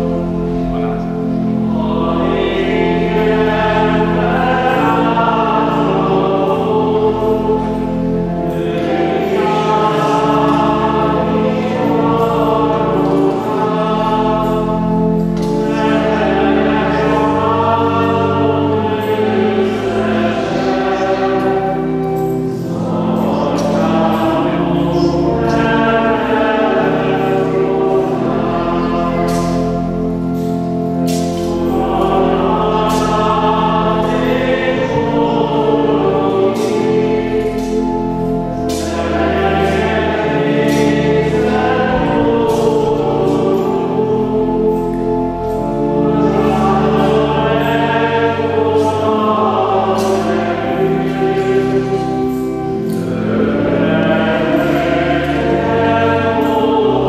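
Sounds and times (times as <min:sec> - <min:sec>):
church choir singing a hymn: 0:00.0 - 0:57.0
sustained low accompanying notes: 0:00.0 - 0:57.0.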